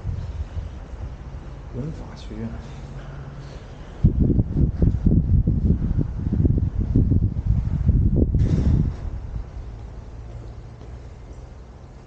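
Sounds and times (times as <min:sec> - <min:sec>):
low rumbling microphone buffeting: 0:00.0 - 0:12.0.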